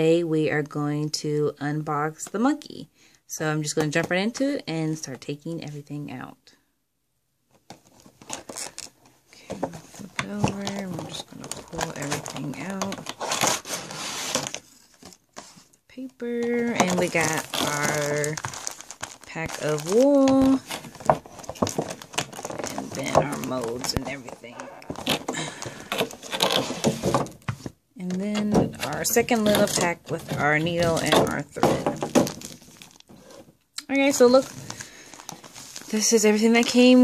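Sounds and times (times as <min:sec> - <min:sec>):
foam and plastic scraping: 0:07.7 - 0:37.0
plastic packaging crinkling: 0:07.8 - 0:15.6, 0:16.2 - 0:27.7, 0:28.7 - 0:37.0.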